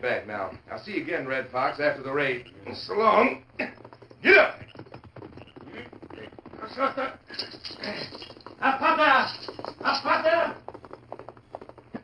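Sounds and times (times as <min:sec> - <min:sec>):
horse hoofbeats galloping: 0:00.2 - 0:12.0.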